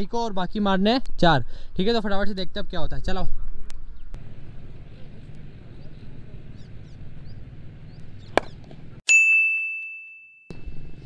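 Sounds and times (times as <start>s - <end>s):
faint outdoor background noise: 0.0s - 9.0s
high bell-like ding: 9.1s - 11.0s.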